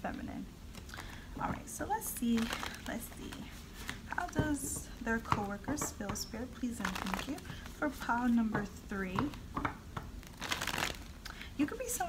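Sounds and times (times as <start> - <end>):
papery rustle of cards: 2.2 - 4.5, 6.7 - 8.2, 10.2 - 11.2.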